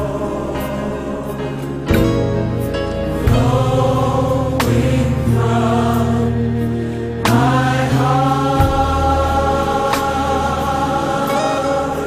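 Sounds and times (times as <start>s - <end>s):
band with bass: 0.0s - 12.0s
gospel choir singing: 0.0s - 12.0s.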